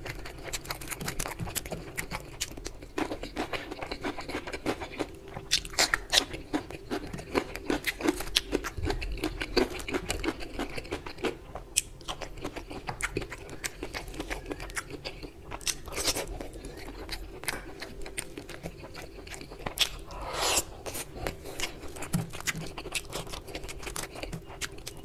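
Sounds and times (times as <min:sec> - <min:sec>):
close chewing crunches: 0:00.0 - 0:25.0.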